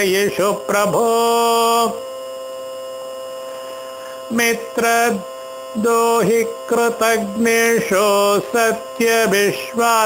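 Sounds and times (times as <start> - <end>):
steady multi-tone hum: 0.0 - 10.0.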